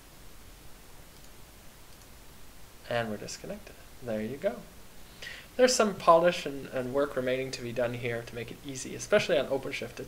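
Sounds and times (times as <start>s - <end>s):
microphone hiss: 0.0s - 10.0s
computer mouse clicks: 1.1s - 2.2s.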